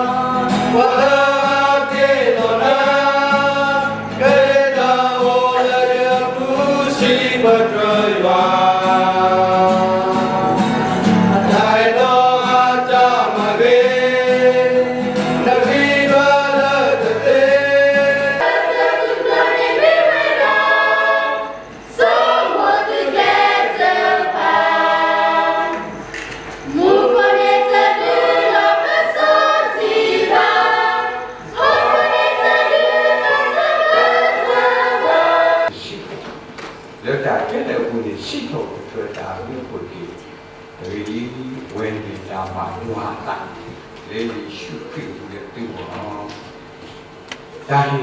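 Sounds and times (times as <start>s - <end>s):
mixed choir singing: 0.0s - 35.8s.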